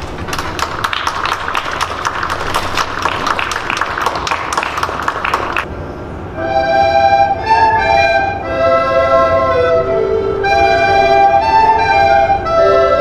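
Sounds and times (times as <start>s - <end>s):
audience applause: 0.0s - 5.7s.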